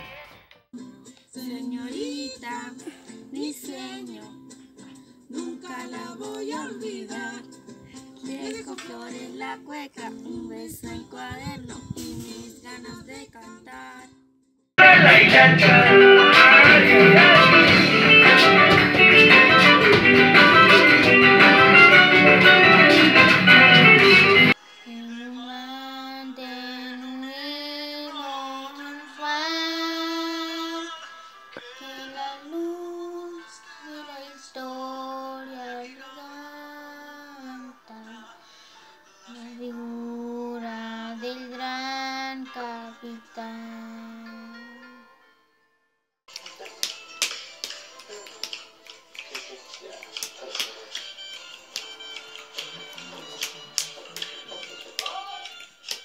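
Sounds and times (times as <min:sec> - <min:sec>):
recorded music with singing: 0:00.0 - 0:14.2, 0:14.8 - 0:45.5, 0:46.3 - 0:56.0
girl singing unaccompanied: 0:01.4 - 0:04.5, 0:05.3 - 0:07.5, 0:08.2 - 0:14.2, 0:24.8 - 0:31.0, 0:31.6 - 0:38.3, 0:39.2 - 0:45.0.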